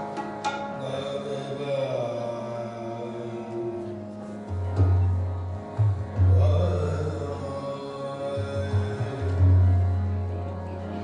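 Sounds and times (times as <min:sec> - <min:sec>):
harmonium drone: 0:00.0 - 0:11.0.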